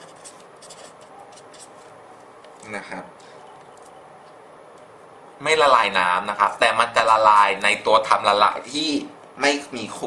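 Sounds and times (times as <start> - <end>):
felt-tip pen scratching on paper: 0.0 - 1.8.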